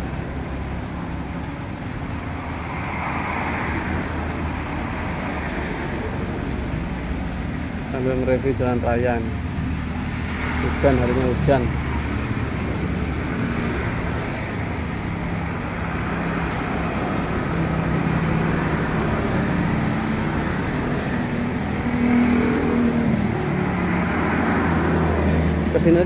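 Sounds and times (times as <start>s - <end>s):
motorcycles passing: 0.0s - 26.0s.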